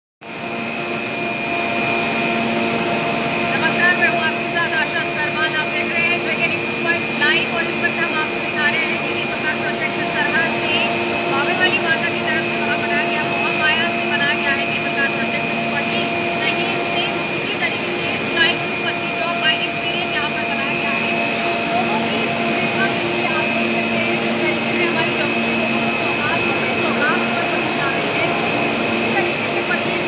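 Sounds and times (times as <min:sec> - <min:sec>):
machinery hum with high whine: 0:00.2 - 0:30.0.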